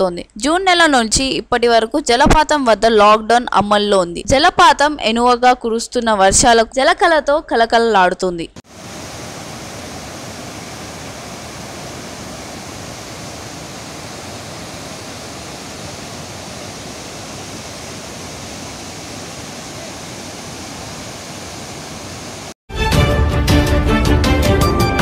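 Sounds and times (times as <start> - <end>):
waterfall rushing: 8.7 - 22.6.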